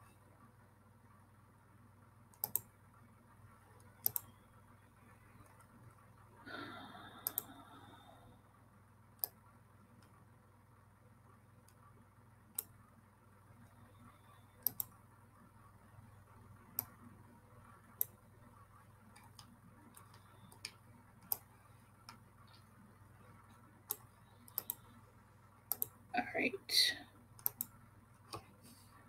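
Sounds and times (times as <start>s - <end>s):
faint steady hum: 0.0s - 29.0s
computer mouse clicking: 2.3s - 2.7s, 3.7s - 4.4s, 7.2s - 7.6s, 9.2s - 9.4s, 12.5s - 12.8s, 14.6s - 15.0s, 16.7s - 17.1s, 17.9s - 18.2s, 19.0s - 22.7s, 23.5s - 25.0s, 25.7s - 26.0s, 27.4s - 28.5s.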